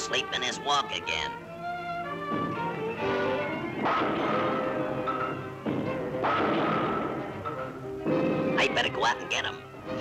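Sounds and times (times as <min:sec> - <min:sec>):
sharp orchestral hit: 0:03.7 - 0:07.4.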